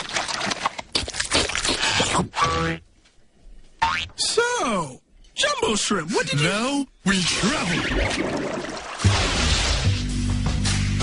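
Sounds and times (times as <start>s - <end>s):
cartoon boing tone: 2.3s - 2.8s, 3.8s - 4.1s.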